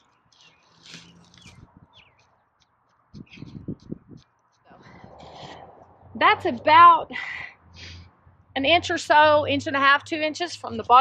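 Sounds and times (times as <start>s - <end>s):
dry straw crackling and rustling: 0.0s - 2.2s.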